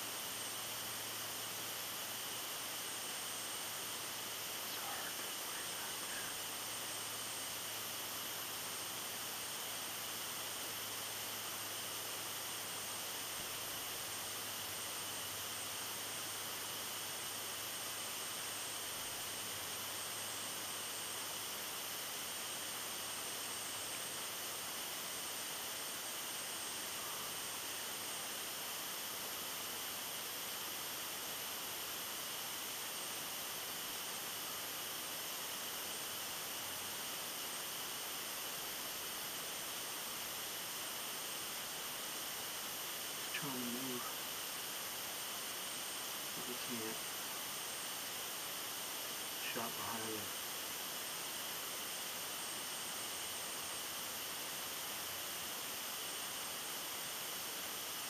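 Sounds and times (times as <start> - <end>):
outdoor ambience hiss: 0.0 - 58.0.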